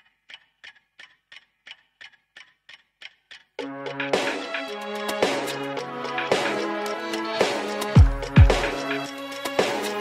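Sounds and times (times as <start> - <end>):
quiet steady ticking: 0.0 - 7.3.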